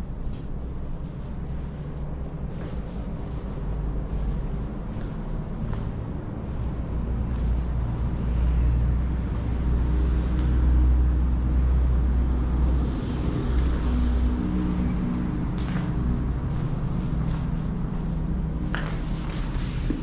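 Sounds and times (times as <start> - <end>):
distant road traffic rumble: 0.0 - 20.0
faint engine hum: 0.0 - 20.0.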